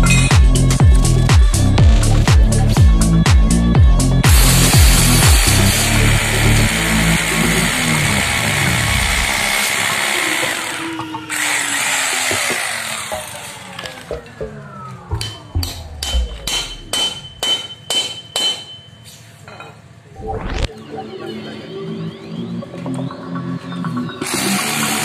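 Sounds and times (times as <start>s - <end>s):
background music: 0.0s - 18.0s, 20.2s - 25.0s
electric drill boring into steel: 4.3s - 14.1s, 24.2s - 25.0s
hammer striking steel rail: 15.1s - 18.9s.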